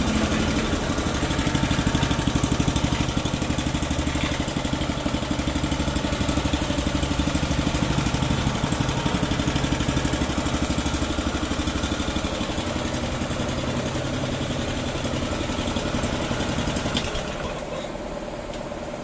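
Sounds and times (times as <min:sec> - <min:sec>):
petrol engine idling: 0:00.0 - 0:19.0.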